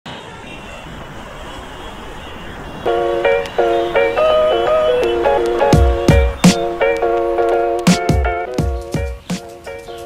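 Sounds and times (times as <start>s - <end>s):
city traffic hum: 0.0s - 10.0s
music with bright chord notes: 2.9s - 10.0s.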